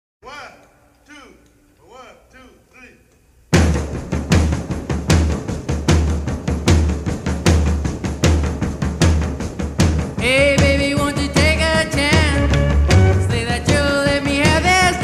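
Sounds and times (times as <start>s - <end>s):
drum kit beat: 3.5s - 15.0s
rock and roll band: 3.6s - 15.0s.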